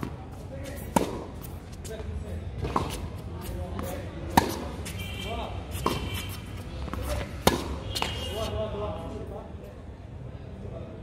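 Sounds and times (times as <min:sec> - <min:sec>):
tennis ball struck by racket: 0:00.0 - 0:02.0, 0:02.6 - 0:05.0, 0:05.7 - 0:08.5.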